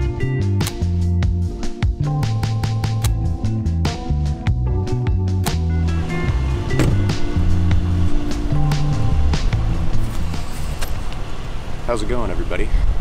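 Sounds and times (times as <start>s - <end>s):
low bass line: 0.0s - 10.8s
drum hits: 6.6s - 7.9s.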